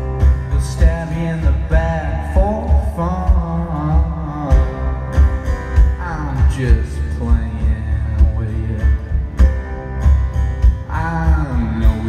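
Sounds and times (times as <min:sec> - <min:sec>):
live rock band playing: 0:00.0 - 0:12.0
drum hits: 0:00.2 - 0:12.0.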